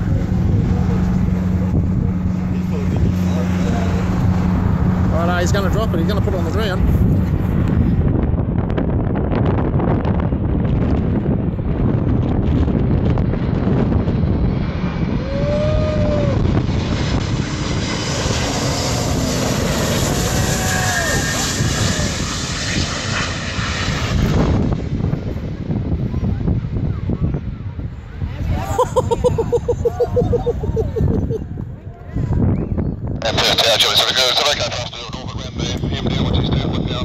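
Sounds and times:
jet aircraft passing overhead: 0.0s - 37.0s.

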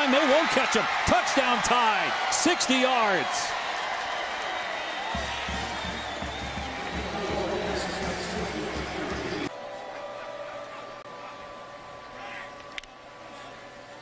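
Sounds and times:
stadium crowd cheering: 0.0s - 12.5s.

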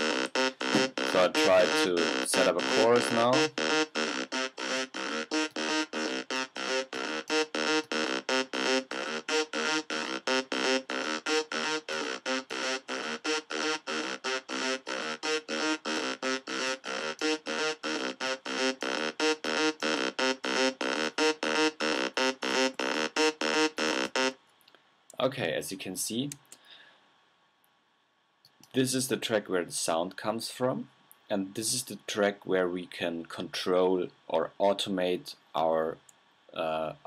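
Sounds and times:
synthesizer playing short notes: 0.0s - 24.3s.

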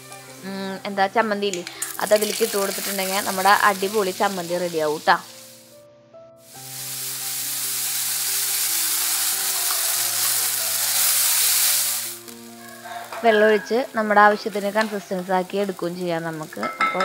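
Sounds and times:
food sizzling in hot oil: 0.0s - 5.8s, 6.4s - 17.0s
soft background music: 0.0s - 17.0s.

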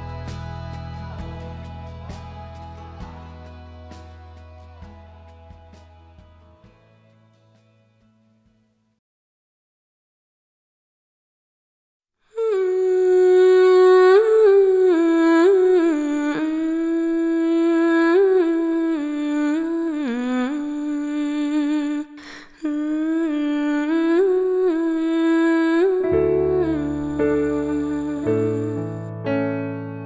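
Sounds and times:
woman humming: 12.3s - 29.1s.

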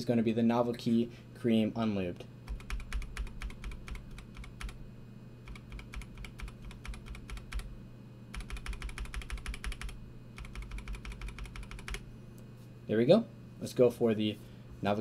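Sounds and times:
keyboard key clicking rapidly: 2.5s - 4.8s, 5.5s - 7.7s, 8.3s - 12.0s.

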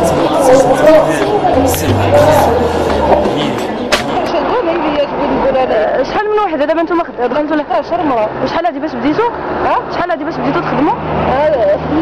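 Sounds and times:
song beat: 0.0s - 4.3s
person speaking: 0.0s - 4.4s
sharp knock: 2.9s - 4.2s.

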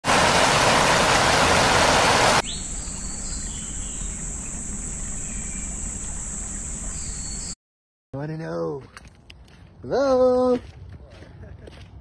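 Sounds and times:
rushing falling water: 0.0s - 2.4s
high-pitched insect drone: 2.4s - 7.6s.

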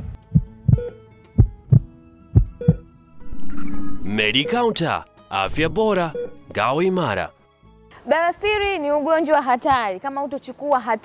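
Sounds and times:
heartbeat thumps: 0.0s - 2.8s
musical swell: 3.1s - 7.2s.

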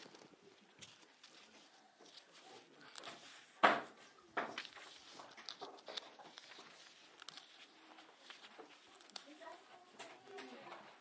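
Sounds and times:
book pages rustling: 0.0s - 11.0s.

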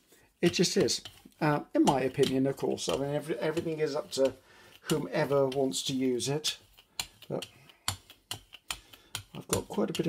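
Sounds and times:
paint roller rolling paint: 0.0s - 10.0s
sharp clicking taps: 0.4s - 10.0s.

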